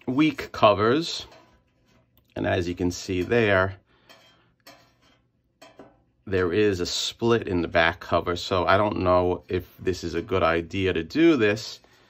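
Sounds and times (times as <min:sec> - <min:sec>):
metal spatula clinking on pan: 0:03.0 - 0:06.1.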